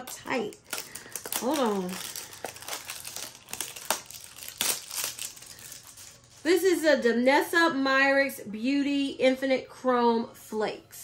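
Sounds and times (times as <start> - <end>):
packaging rustling: 0.0 - 6.5
packaging crinkling and tearing: 0.0 - 6.6.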